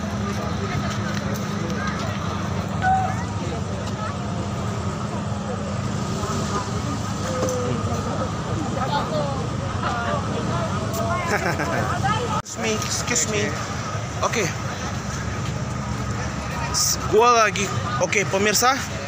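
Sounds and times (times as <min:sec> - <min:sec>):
people talking: 0:00.0 - 0:19.0
steady traffic: 0:00.0 - 0:19.0.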